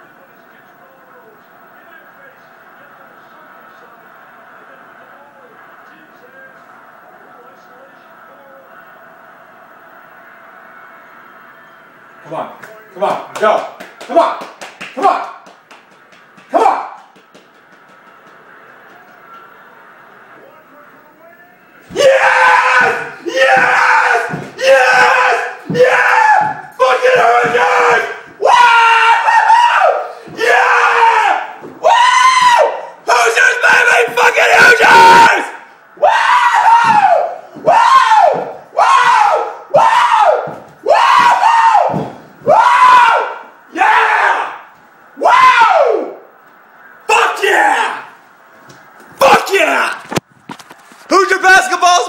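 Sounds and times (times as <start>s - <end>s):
faint basketball broadcast on tv: 0.0s - 52.0s.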